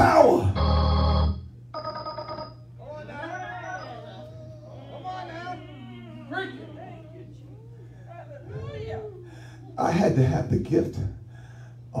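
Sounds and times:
church organ chord: 0.1s - 2.3s.

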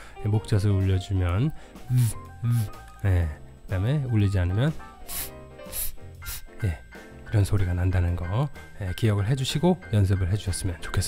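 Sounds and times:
soft background music: 0.0s - 11.0s
man making breathy hisses: 1.9s - 2.8s, 4.9s - 6.6s.

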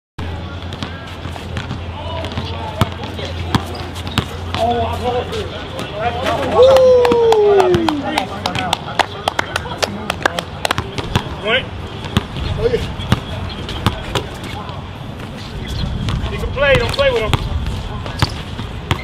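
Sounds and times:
basketball bouncing on court: 0.6s - 4.8s, 10.7s - 11.4s, 12.0s - 14.3s, 16.0s - 19.0s
person shouting oh: 6.5s - 8.0s.

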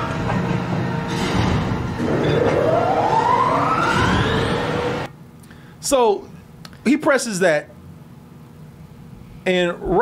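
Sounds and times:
whine rising in pitch: 1.9s - 5.1s.

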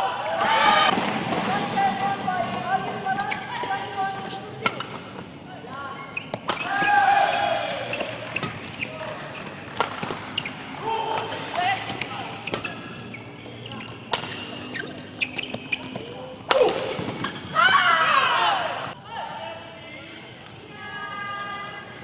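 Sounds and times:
voices echoing in a hall: 0.0s - 9.7s, 17.6s - 22.0s
racket hitting shuttlecock: 0.9s - 5.0s, 6.2s - 7.2s, 9.4s - 12.9s, 14.1s - 17.5s
shoe squeaks: 3.2s - 5.2s, 5.9s - 10.8s, 11.4s - 16.3s.

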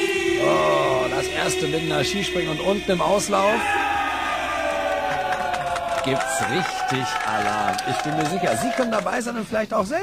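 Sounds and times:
voices singing long held note: 0.0s - 8.3s.

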